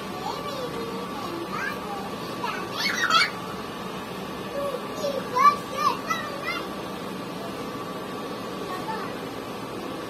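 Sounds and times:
faint steady hum: 0:00.0 - 0:10.0
squeaky childlike calls: 0:02.8 - 0:03.4.

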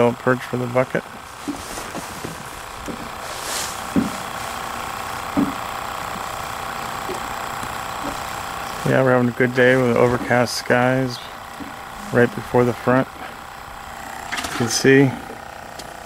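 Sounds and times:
steady hum: 0:00.0 - 0:16.0.

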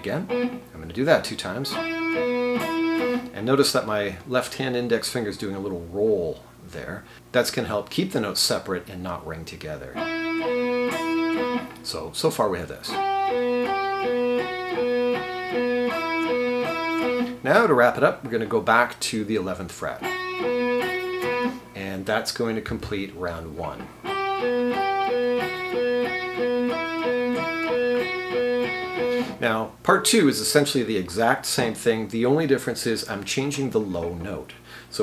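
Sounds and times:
electric guitar single notes: 0:00.0 - 0:00.7, 0:01.6 - 0:03.4, 0:10.0 - 0:11.8, 0:12.9 - 0:17.4, 0:20.0 - 0:21.7, 0:23.6 - 0:29.4.

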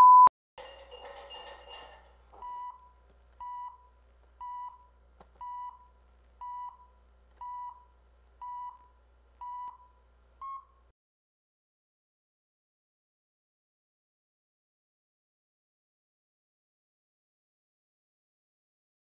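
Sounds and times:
short countdown beeps: 0:00.0 - 0:00.3
faint low hum: 0:00.6 - 0:10.9.

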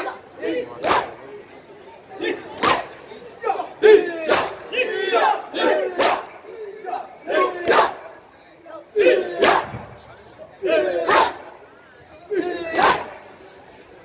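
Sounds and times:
men shouting chants: 0:03.4 - 0:08.1, 0:08.8 - 0:09.7, 0:10.6 - 0:11.4.

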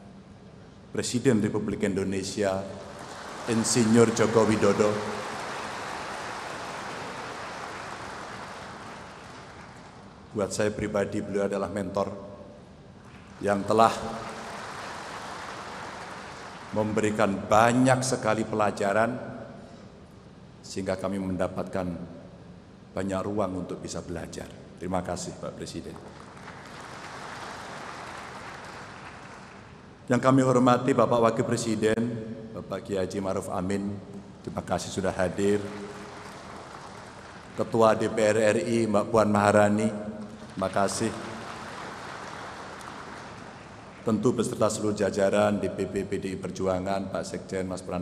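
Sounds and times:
audience applauding: 0:02.8 - 0:10.2, 0:13.1 - 0:17.2, 0:25.8 - 0:29.9, 0:35.3 - 0:38.1, 0:40.3 - 0:44.2.

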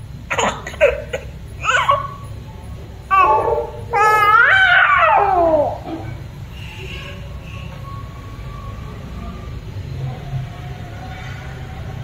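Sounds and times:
baby crying: 0:03.1 - 0:06.0.

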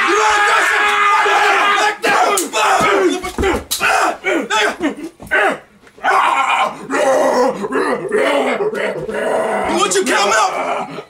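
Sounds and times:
men yelling: 0:00.0 - 0:11.0.

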